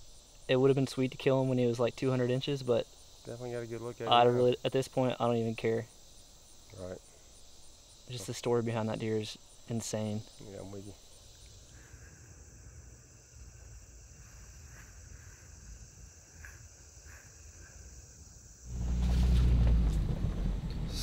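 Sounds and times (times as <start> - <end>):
insects chirring: 0.0 - 21.0
loud low rumble: 18.7 - 21.0.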